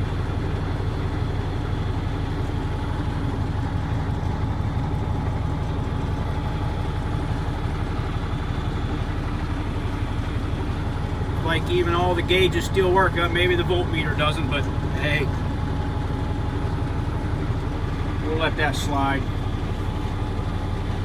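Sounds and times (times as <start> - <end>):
diesel truck engine idling: 0.0 - 21.0.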